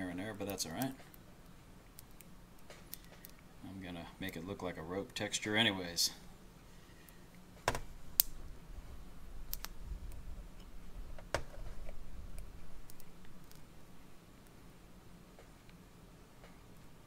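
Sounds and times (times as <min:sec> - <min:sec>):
faint low rumble: 0:00.0 - 0:17.0.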